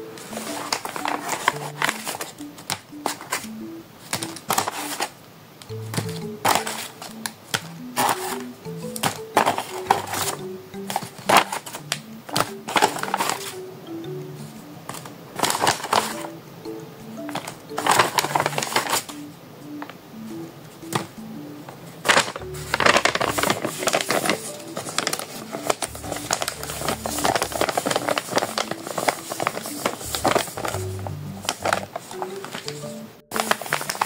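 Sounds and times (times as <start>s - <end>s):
light background music: 0.0s - 5.1s, 5.7s - 34.0s
paper bags crinkling: 0.2s - 5.2s, 6.1s - 13.6s, 14.9s - 16.4s, 17.2s - 19.3s, 22.0s - 34.0s.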